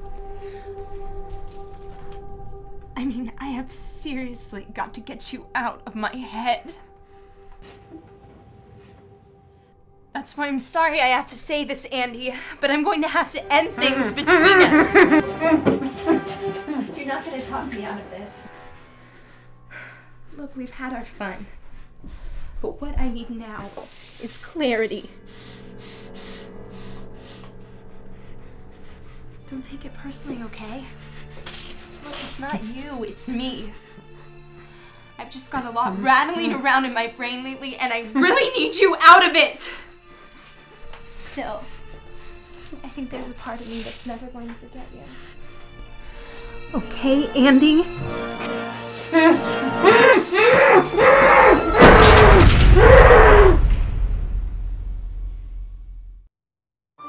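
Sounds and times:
quick heavy breathing: 15.1s - 17.6s, 30.7s - 33.0s, 39.6s - 44.1s
man's muffled screams: 50.4s - 53.6s
deep boom and crash: 51.8s - 56.3s.

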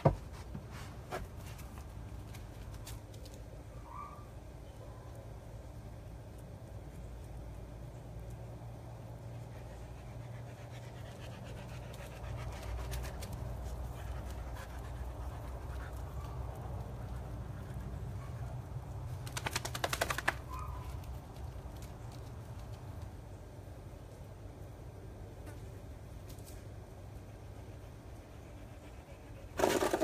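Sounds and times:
steady low hum: 0.0s - 30.0s
dog panting: 9.2s - 18.4s, 27.2s - 29.6s.

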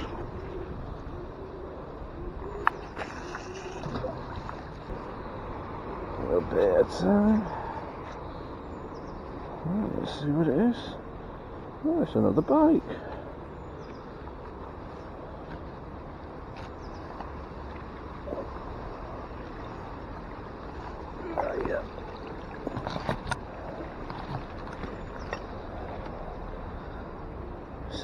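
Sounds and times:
steady outdoor hiss: 0.0s - 28.0s.

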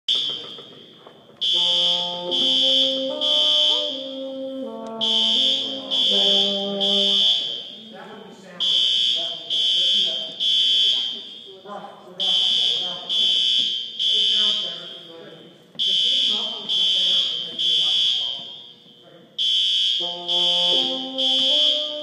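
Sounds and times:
fire alarm beeping: 0.1s - 4.1s, 4.7s - 22.0s
bassoon slow melody: 1.5s - 8.0s, 20.0s - 22.0s.

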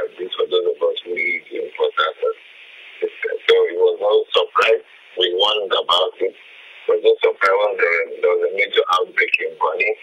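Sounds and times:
man speaking over telephone: 0.0s - 2.4s, 3.0s - 10.0s.

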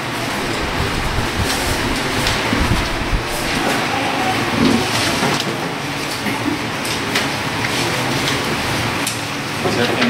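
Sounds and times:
rumbling room noise: 0.0s - 10.0s.

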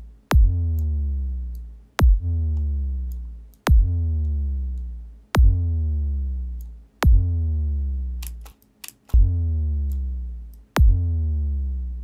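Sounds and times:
kick drum hit: 0.3s - 0.6s, 2.0s - 2.3s, 3.7s - 4.0s, 5.4s - 5.6s, 7.0s - 7.3s, 10.8s - 11.0s
mouse clicks: 8.2s - 9.2s.

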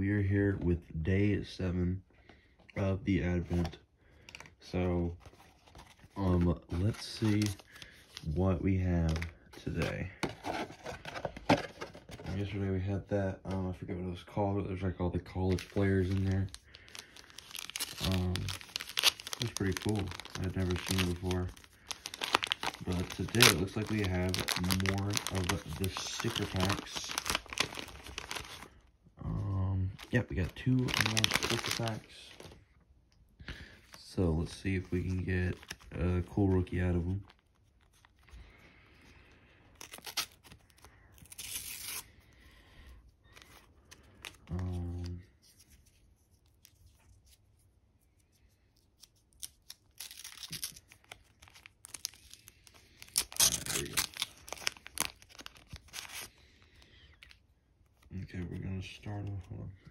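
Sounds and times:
crinkly packaging rustling: 2.3s - 12.6s, 15.2s - 32.8s, 33.4s - 42.1s, 42.9s - 47.6s, 48.2s - 59.9s
paper wrappers tearing: 5.2s - 8.4s, 15.4s - 28.7s, 29.9s - 32.6s, 39.8s - 42.1s, 49.0s - 56.4s.

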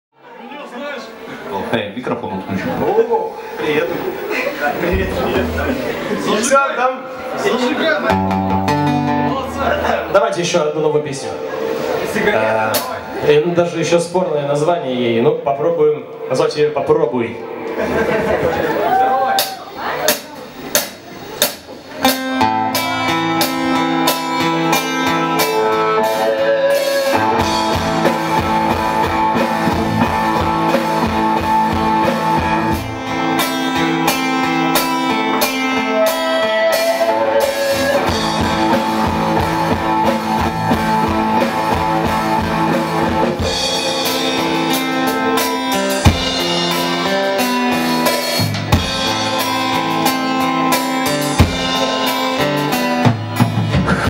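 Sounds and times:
electric guitars: 2.4s - 14.2s, 17.3s - 54.0s
live rock band playing: 2.5s - 14.7s, 17.4s - 54.0s
bass guitar: 4.0s - 6.4s, 8.0s - 13.8s, 17.4s - 54.0s
drum kit: 4.8s - 6.5s, 8.0s - 10.6s, 11.4s - 13.3s, 17.7s - 54.0s.

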